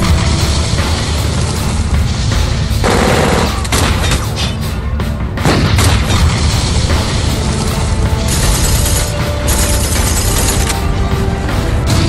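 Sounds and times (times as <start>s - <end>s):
action film music: 0.0s - 12.0s
heavy rumble: 0.0s - 12.0s.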